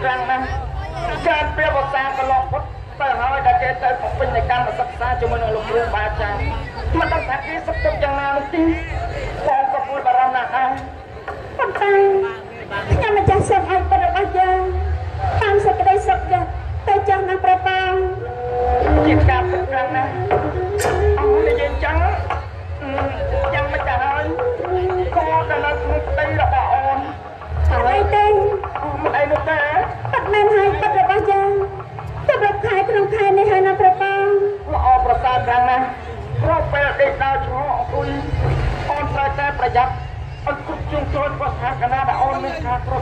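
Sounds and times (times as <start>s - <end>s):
man speaking through loudspeakers: 0.0s - 10.9s, 11.6s - 13.5s, 21.0s - 22.3s, 34.7s - 43.0s.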